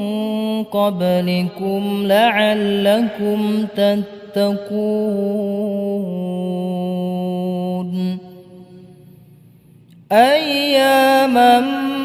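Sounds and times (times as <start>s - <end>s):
person reciting: 0.0s - 12.0s.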